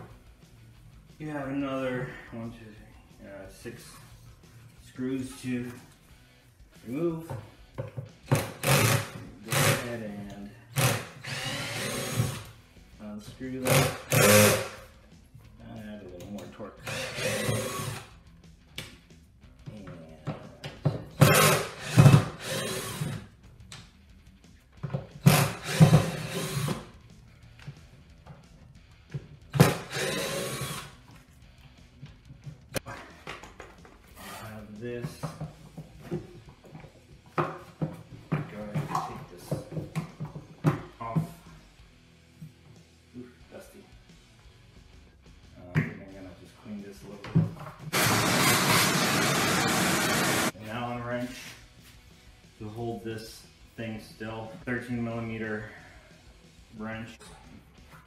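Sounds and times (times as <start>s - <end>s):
cordless drill spinning: 10.7s - 12.5s, 16.8s - 18.1s, 21.2s - 23.2s, 25.2s - 26.8s, 29.7s - 30.9s, 47.9s - 50.6s.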